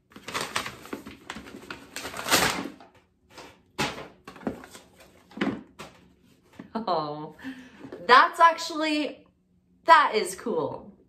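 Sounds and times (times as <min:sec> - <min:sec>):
box and tissue paper rustling: 0:00.0 - 0:06.7.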